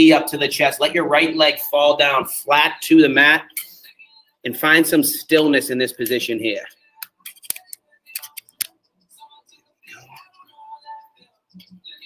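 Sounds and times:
device handling clicks and rubs: 7.0 - 8.8.

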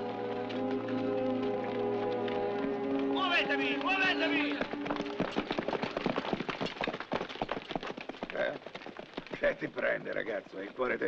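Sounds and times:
horse hooves on stony ground: 0.0 - 11.0
running footsteps on stones: 0.0 - 11.0.

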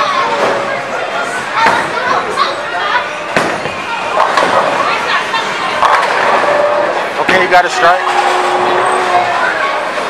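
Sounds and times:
bowling balls rolling: 3.3 - 10.0.

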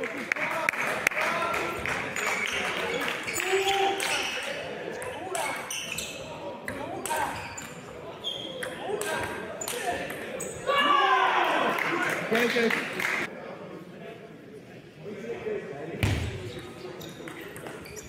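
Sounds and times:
murmur of voices: 0.0 - 18.0.

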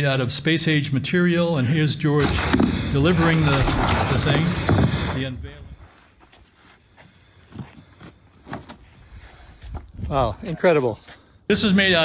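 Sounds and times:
cardboard packaging rustling: 2.2 - 5.4.

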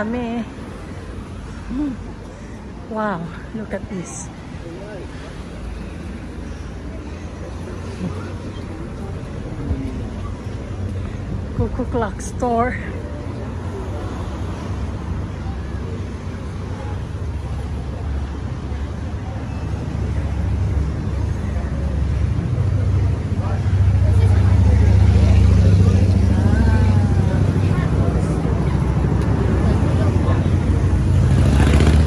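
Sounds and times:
faint voices of passers-by: 0.0 - 32.0
street traffic rumble: 0.0 - 32.0
motor vehicle running: 5.9 - 32.0.

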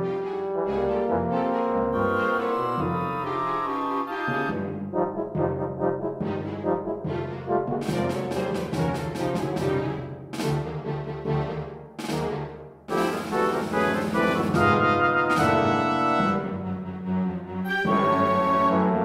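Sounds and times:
orchestral music led by brass: 0.0 - 19.0.

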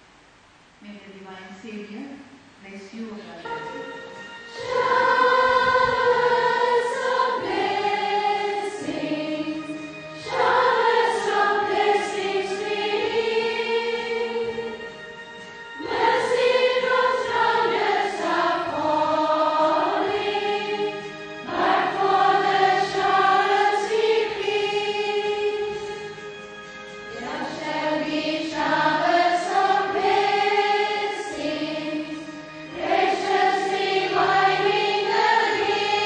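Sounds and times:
choir singing: 4.4 - 26.4, 27.1 - 36.0.

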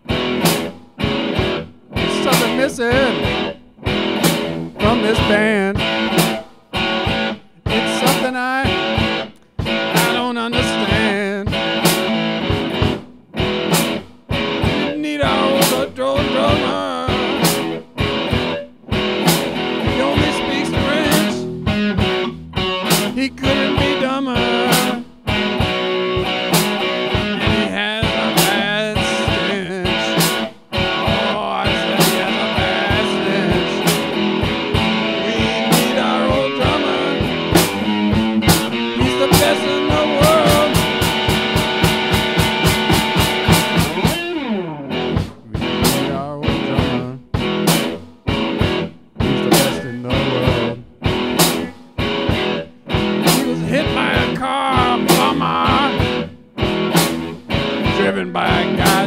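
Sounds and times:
blues-rock guitar playing: 0.0 - 59.0.

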